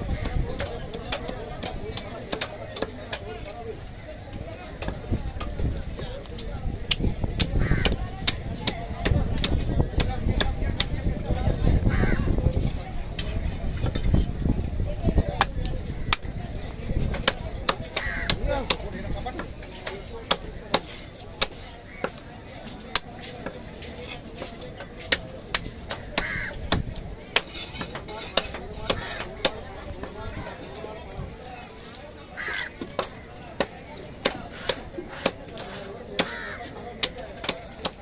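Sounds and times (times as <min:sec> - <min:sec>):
cleaver chopping on wooden block: 0:32.5 - 0:36.4.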